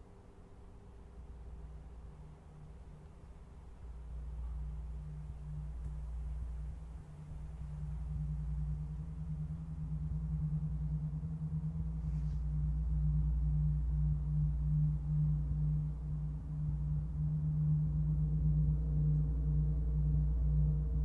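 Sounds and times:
gong humming drone: 1.2 - 21.0.

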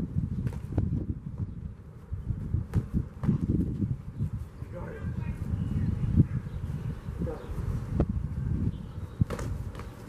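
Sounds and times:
wind on microphone: 0.0 - 10.0
boxing gloves thumping: 9.2 - 9.9.

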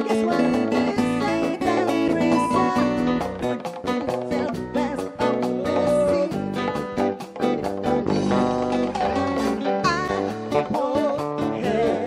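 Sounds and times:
live guitar band music: 0.0 - 12.0.

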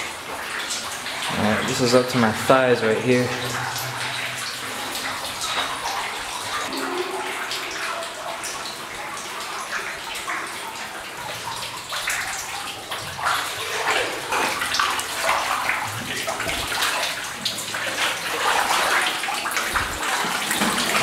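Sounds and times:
water sloshing around wading legs: 3.3 - 21.0.

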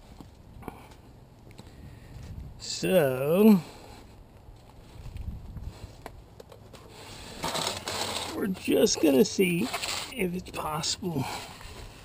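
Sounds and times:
hands scraping gear on concrete: 5.9 - 10.3.

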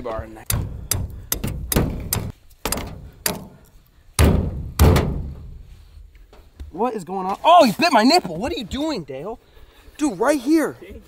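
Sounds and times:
hammer striking metal stake: 0.4 - 3.6.

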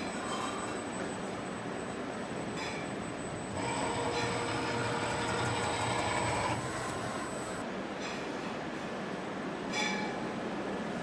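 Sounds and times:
printer motor whirring: 3.2 - 7.6.

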